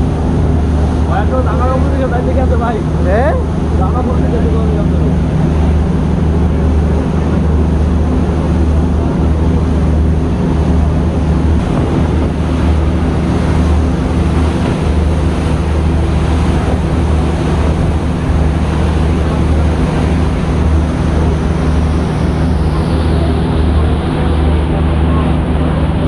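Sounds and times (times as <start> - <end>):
boat engine hum: 0.0 - 26.0
water churning and breaking: 0.0 - 26.0
wind buffeting microphone: 0.0 - 26.0
wind rushing: 10.1 - 23.0.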